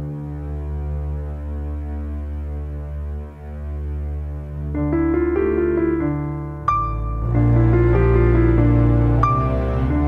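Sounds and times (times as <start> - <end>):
low synthesizer drone: 4.5 - 10.0.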